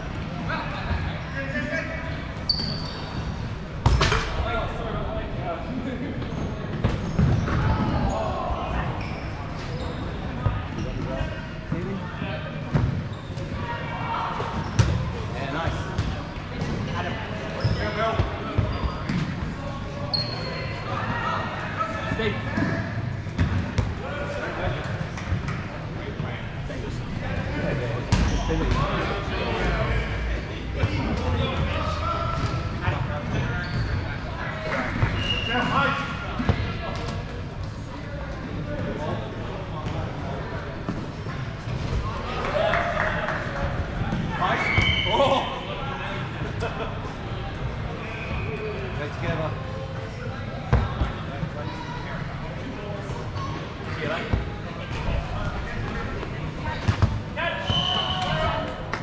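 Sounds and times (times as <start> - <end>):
players shouting in echoing hall: 0.2 - 12.6, 13.2 - 24.8, 41.9 - 48.9.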